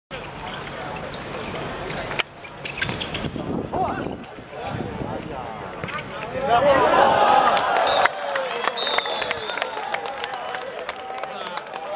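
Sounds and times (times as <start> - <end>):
players and onlookers calling out: 3.7 - 11.9.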